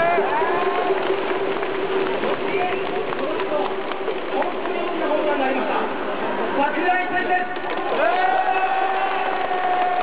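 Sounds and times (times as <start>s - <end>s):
fan shouting: 0.0s - 1.2s, 4.4s - 10.0s
crowd hubbub: 0.0s - 10.0s.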